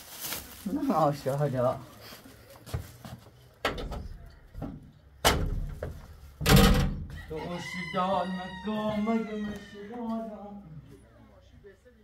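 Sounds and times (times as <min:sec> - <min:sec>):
rooster crowing: 0:07.1 - 0:10.3.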